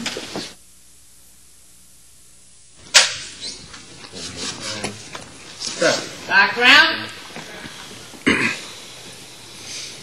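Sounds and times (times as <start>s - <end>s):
low steady hiss: 0.0s - 10.0s
sharp crack: 2.9s - 3.4s.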